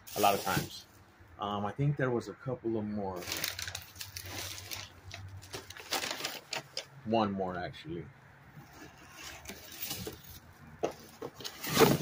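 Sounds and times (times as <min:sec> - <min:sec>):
package rustling: 0:03.2 - 0:06.9.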